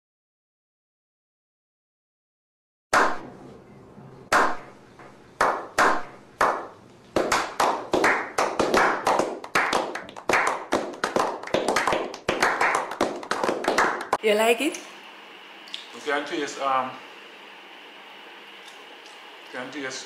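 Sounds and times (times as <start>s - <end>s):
hands clapping: 3.0s - 3.2s, 4.3s - 4.7s, 5.4s - 14.2s.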